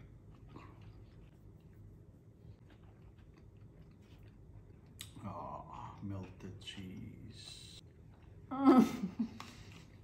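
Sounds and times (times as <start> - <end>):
chewing with mouth clicks: 0.0 - 5.2.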